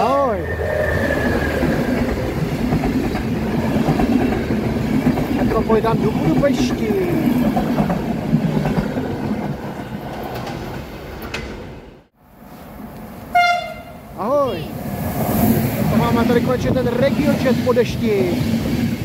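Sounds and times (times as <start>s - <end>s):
train rushing in: 0.0s - 19.0s
train horn blasts: 13.3s - 14.0s.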